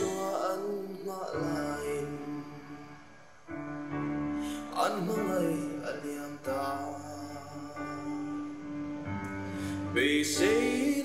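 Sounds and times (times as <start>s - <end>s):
slow solemn song: 0.0s - 11.0s.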